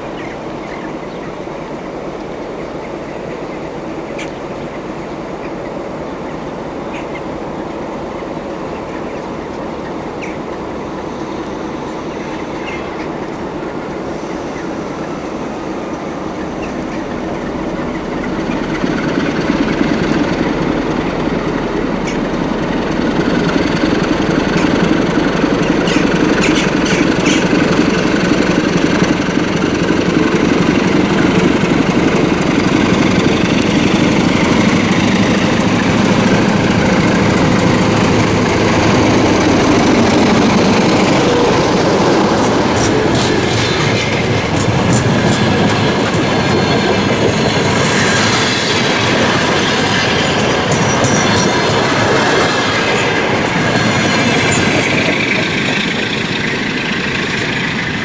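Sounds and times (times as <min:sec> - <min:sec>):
diesel locomotive engine under load: 0:00.0 - 0:58.0
train wheels clicking over rail joints: 0:15.8 - 0:58.0
light wheel squeal: 0:49.4 - 0:53.1.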